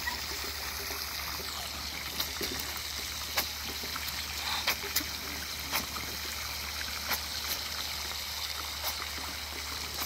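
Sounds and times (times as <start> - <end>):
ducks splashing in water: 0.0 - 10.0.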